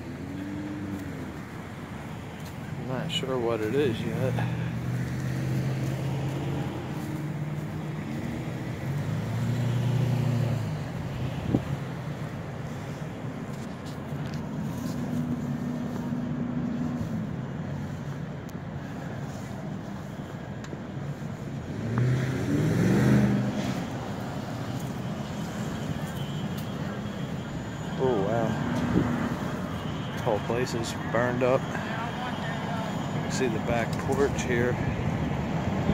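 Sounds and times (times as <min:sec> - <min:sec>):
low traffic hum: 0:00.0 - 0:35.9
vehicle engines passing: 0:00.0 - 0:35.9.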